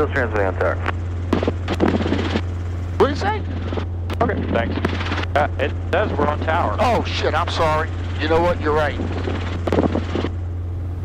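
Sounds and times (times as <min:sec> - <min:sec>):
helicopter engine and rotor drone: 0:00.0 - 0:11.0.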